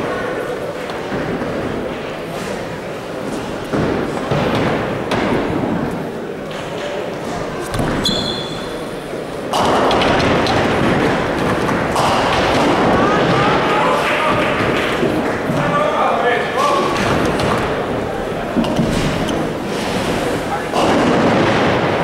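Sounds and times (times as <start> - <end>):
crowd voices and shouting: 0.0 - 22.0
bowling ball thudding and rolling: 9.5 - 15.7.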